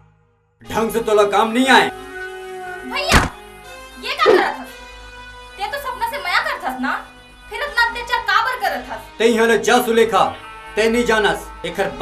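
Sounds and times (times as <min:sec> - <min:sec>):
loud thunk: 0:03.1 - 0:03.4.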